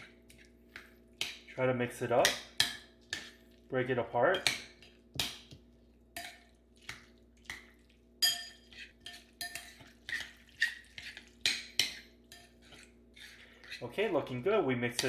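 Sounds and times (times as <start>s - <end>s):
metal fork scraping ceramic bowl: 8.2s - 14.0s.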